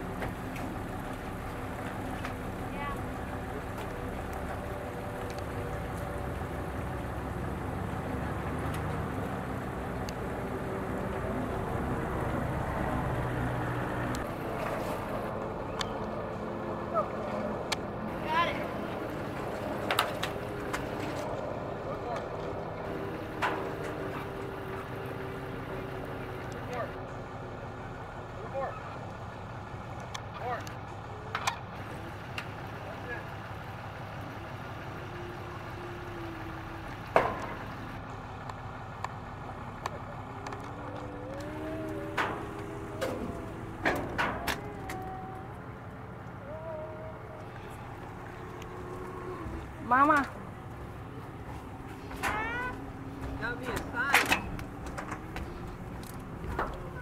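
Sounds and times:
low motor hum: 0.0s - 57.0s.

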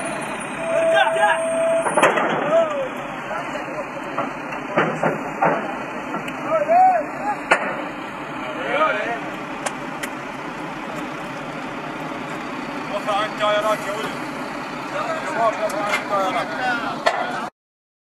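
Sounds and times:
vehicle engine running: 0.0s - 17.5s
men's voices: 2.2s - 17.5s.

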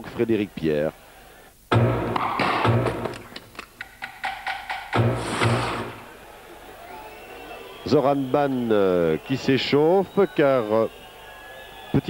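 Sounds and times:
deep bass hits: 1.7s - 3.2s.

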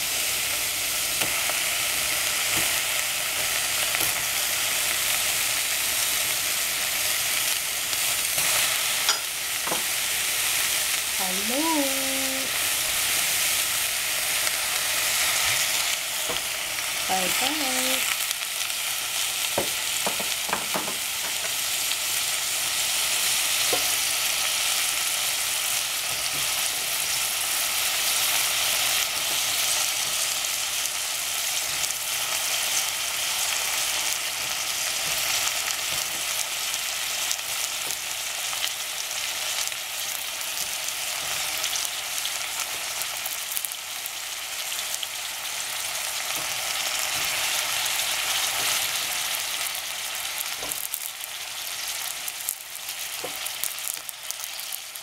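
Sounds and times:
vegetables sizzling in a pot: 0.0s - 55.0s.

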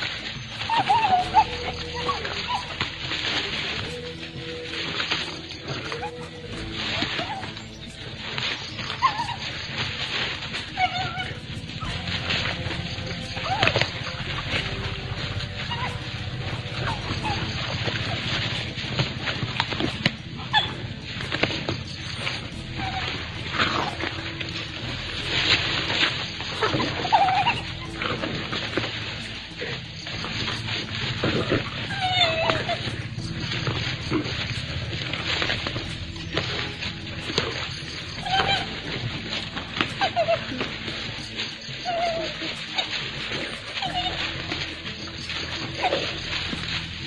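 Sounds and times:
wild dogs feeding: 0.0s - 47.0s.

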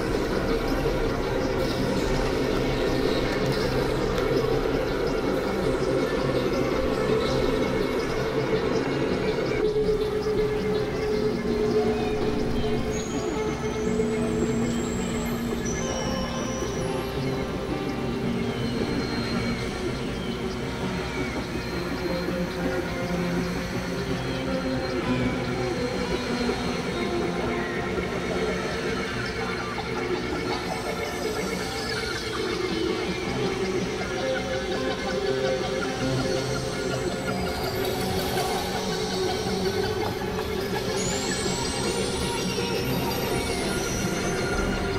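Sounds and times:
synthesizer drones and noise: 0.0s - 44.9s.

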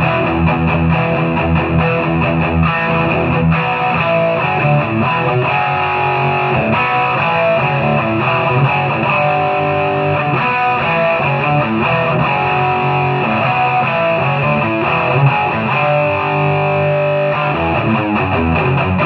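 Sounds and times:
distorted electric guitar riff: 0.0s - 19.0s.

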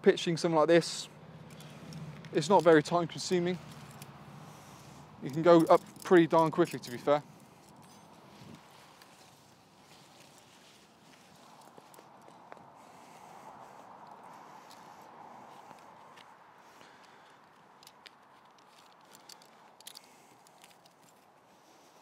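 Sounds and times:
faint outdoor hush: 0.0s - 22.0s
tent pegs ticking and knocking: 1.2s - 12.8s, 13.5s - 21.6s.

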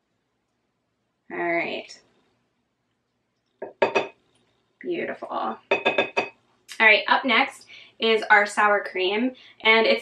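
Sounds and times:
wooden spoon clinking glass bowl: 3.6s - 4.1s, 5.6s - 6.3s.

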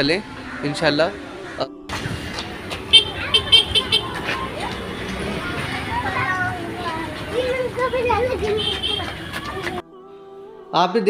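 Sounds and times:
traffic noise: 0.0s - 9.8s
faint voices: 2.4s - 9.8s.

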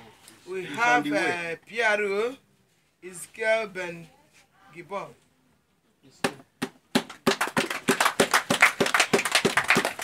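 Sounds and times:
quick hand clapping: 6.2s - 10.0s.

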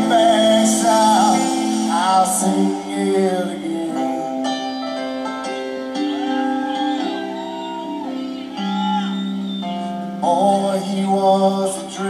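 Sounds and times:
electric guitars: 0.0s - 12.0s
keyboards holding chords: 0.0s - 12.0s.

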